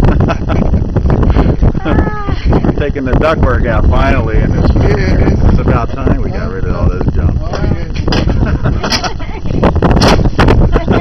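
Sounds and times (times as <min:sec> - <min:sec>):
wind rumble on microphone: 0:00.0 - 0:11.0
voices: 0:01.8 - 0:09.5, 0:10.6 - 0:11.0.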